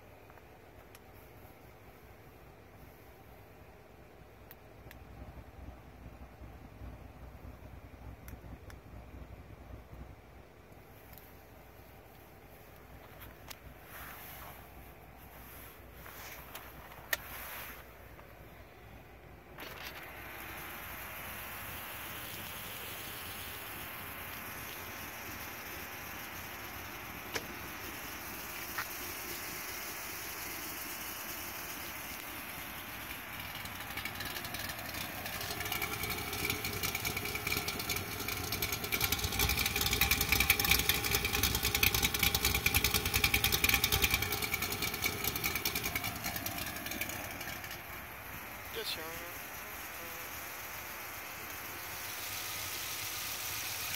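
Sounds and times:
car engine idling: 0.0 - 53.9.

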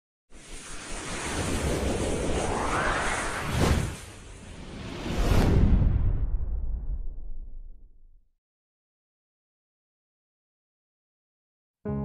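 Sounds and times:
whoosh with low rumble: 0.3 - 8.3.

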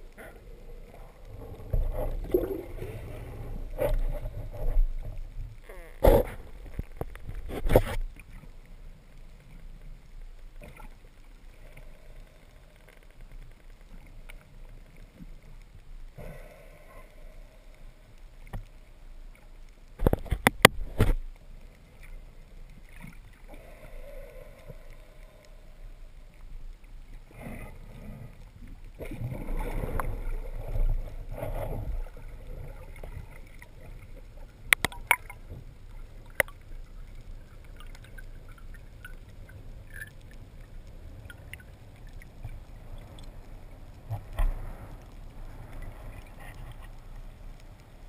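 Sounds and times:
faint clicks: 0.0 - 48.0
underwater rumble: 0.0 - 48.0.

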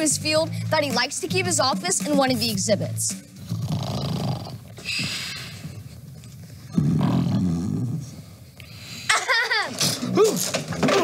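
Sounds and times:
man snoring: 3.5 - 4.6, 6.7 - 8.3
hissing breath: 4.8 - 5.8.

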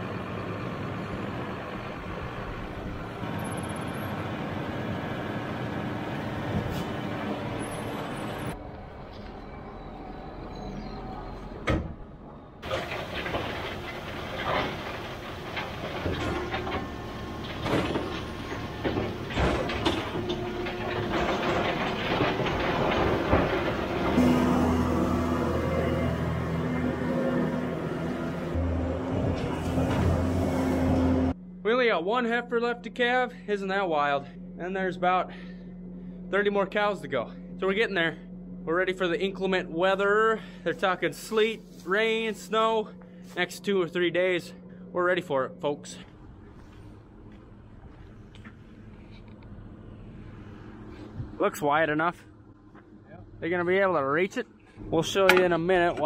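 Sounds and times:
tractor engine running: 0.0 - 9.2, 10.7 - 31.4, 54.8 - 56.0
knocks and clatters: 12.6 - 24.5
bale processor shredding hay: 12.6 - 31.3.

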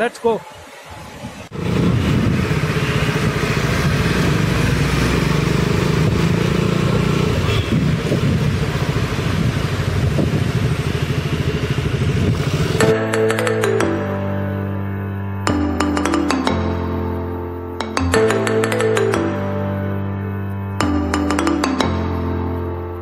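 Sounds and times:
motorcycle engine running: 1.6 - 13.0.

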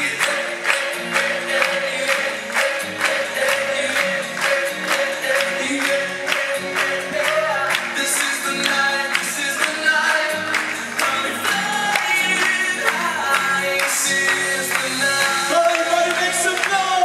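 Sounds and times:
dance track over loudspeakers: 0.0 - 17.0
man singing into microphone: 1.4 - 17.0.

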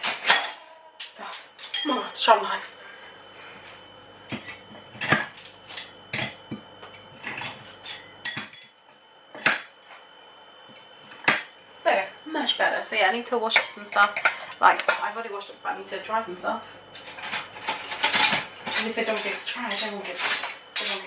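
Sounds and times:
crockery and cutlery clinking: 0.0 - 2.1, 4.3 - 8.7, 13.6 - 15.1, 17.0 - 21.0.

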